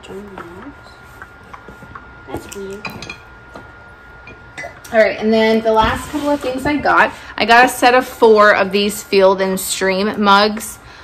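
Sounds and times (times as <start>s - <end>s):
ceramic mugs clinking: 2.8s - 3.3s.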